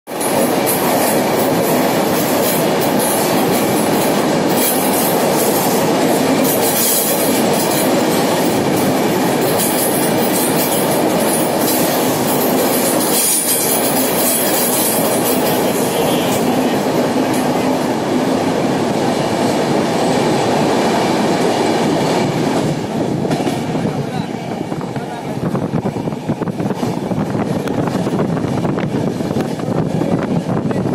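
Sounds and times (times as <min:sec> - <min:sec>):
train wheels on rails in tunnel: 0:00.1 - 0:30.9.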